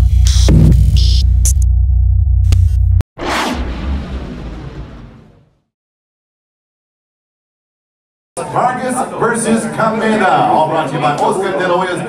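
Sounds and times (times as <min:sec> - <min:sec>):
deep throbbing electronic bass drone: 0:00.0 - 0:05.1.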